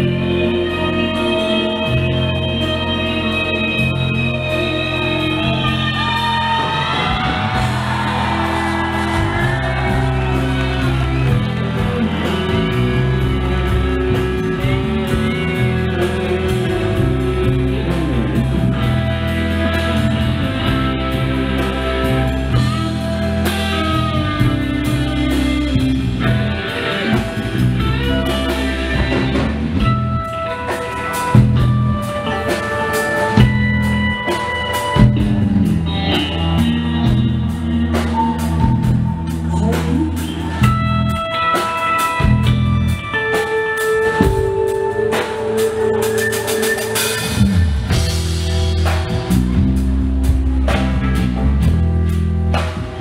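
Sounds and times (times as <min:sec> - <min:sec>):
bass guitar: 0:00.0 - 0:53.0
drum kit: 0:00.0 - 0:53.0
electric guitar: 0:00.0 - 0:53.0
rock band playing: 0:00.0 - 0:53.0.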